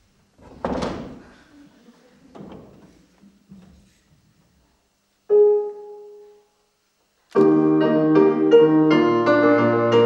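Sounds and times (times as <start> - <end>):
stage gear knocks: 0.4 - 1.2.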